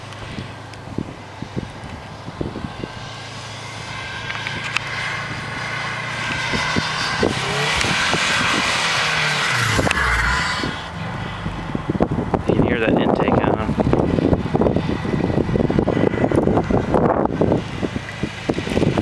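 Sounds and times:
car engine revving hard: 3.1 - 12.4.

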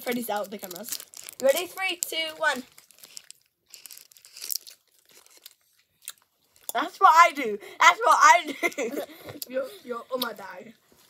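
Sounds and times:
faint wrapper rustling: 0.0 - 6.8.

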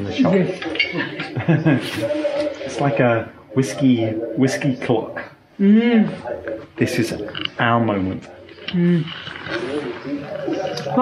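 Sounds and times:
quiet indistinct voices: 0.0 - 11.0.

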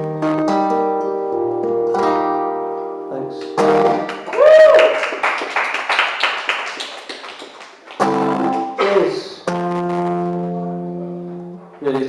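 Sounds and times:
small audience clapping: 3.3 - 9.2.

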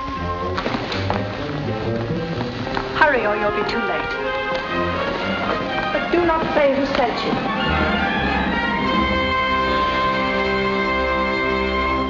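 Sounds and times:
orchestral film score music: 0.0 - 12.0.

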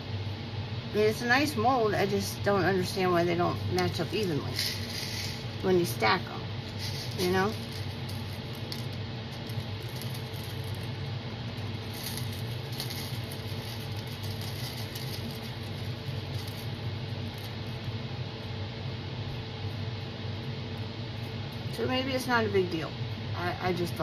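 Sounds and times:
low background hum: 0.0 - 24.0.

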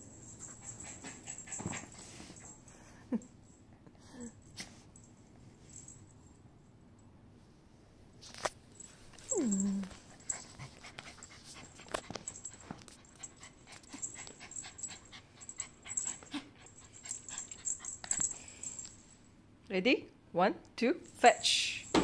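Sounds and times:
dog whining: 9.2 - 10.2.

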